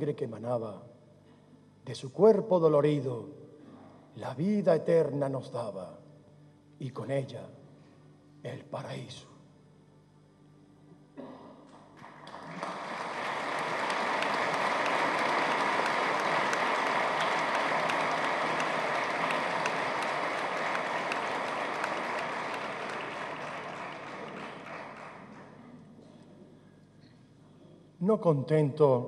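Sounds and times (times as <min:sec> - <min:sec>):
audience applauding: 0:12.0 - 0:25.8.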